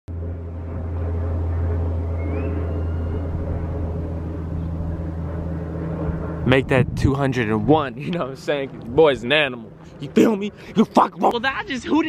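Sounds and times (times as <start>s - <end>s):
low engine drone: 0.0s - 12.0s
faint high whistle: 2.1s - 3.3s.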